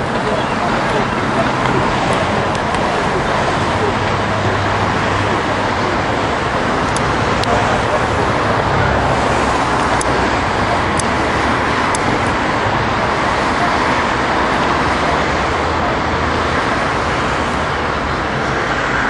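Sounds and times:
steady rushing noise: 0.0 - 19.0.

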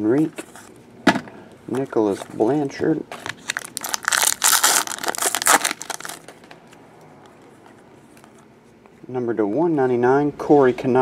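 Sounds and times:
foil wrapper tearing and crumpling: 3.2 - 6.5.

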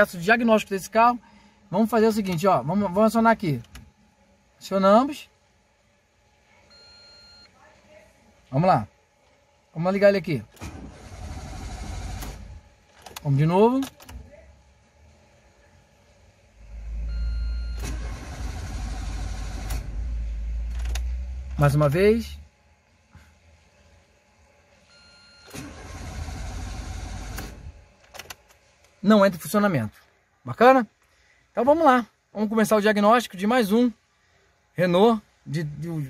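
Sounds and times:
engine cranking by starter motor: 10.5 - 13.3, 17.7 - 21.6, 25.4 - 28.4.

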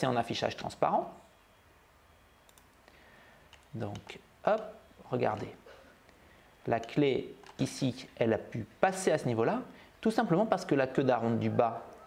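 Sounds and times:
computer mouse clicks: 2.4 - 4.7, 6.8 - 7.6.

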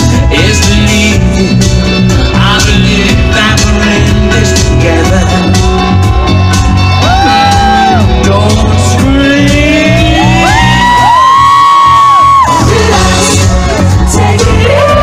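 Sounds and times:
live pop band playing: 0.0 - 15.0
crowd shouts and whoops: 5.7 - 8.3, 9.6 - 15.0.

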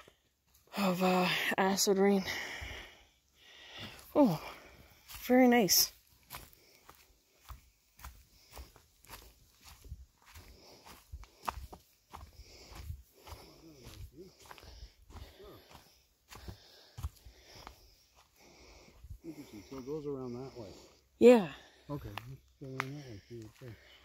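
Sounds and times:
footsteps on dry leaves: 4.6 - 18.8.

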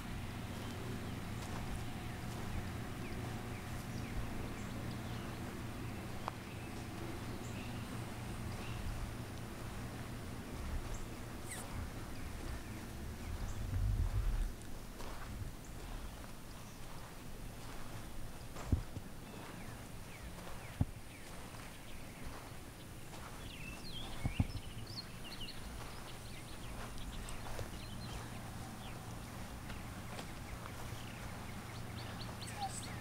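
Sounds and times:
low rumble: 0.0 - 16.2
faint high chirps: 11.4 - 11.8, 32.0 - 33.0.

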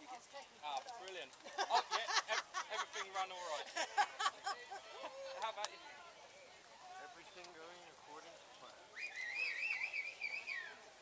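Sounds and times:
high wavering whistle: 8.9 - 10.8.

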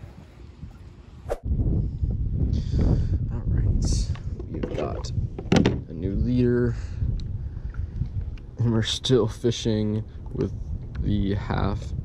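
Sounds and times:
loud low rumbling on microphone: 1.2 - 12.0.

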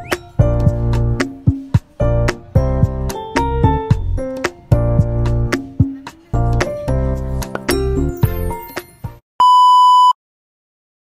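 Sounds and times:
background music: 0.0 - 9.2
loud electronic beep: 9.4 - 10.2.

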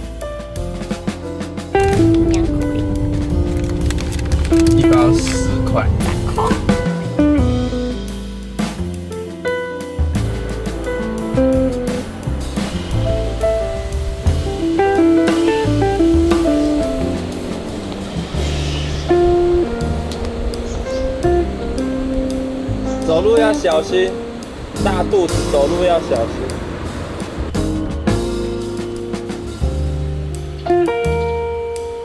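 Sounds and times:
guitar-led background music: 0.0 - 32.0.

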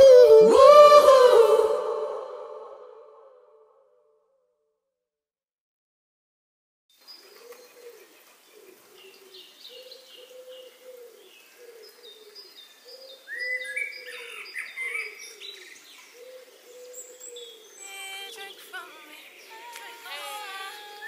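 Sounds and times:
low cooing call: 0.0 - 3.5, 7.2 - 21.0
birds chirping: 6.9 - 21.0.

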